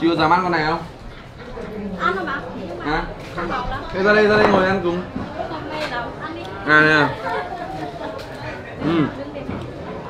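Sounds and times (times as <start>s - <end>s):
quiet chatter: 0.0s - 10.0s.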